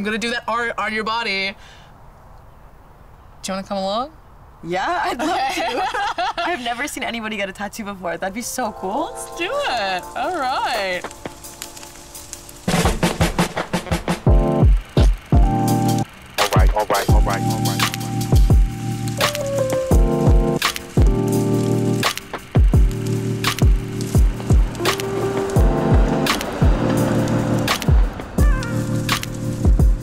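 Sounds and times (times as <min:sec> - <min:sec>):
background music with drum beat: 0:10.0 - 0:30.0.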